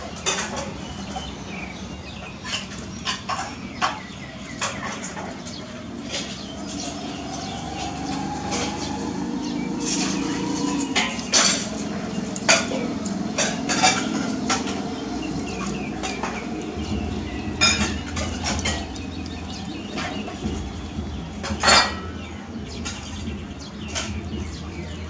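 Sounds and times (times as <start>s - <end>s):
low rumble: 5.9s - 24.9s.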